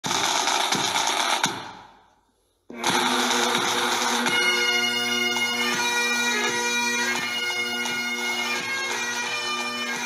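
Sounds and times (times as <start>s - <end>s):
drum beat: 0.0s - 2.0s, 2.7s - 9.5s
harsh buzzing music with beat: 2.7s - 8.4s
bagpipes playing: 2.7s - 10.0s.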